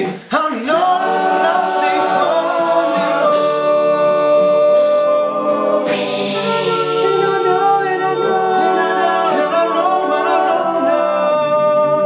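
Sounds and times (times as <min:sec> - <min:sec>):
vocal percussion clicks and beats: 0:00.0 - 0:11.0
male a cappella group singing: 0:00.0 - 0:12.0.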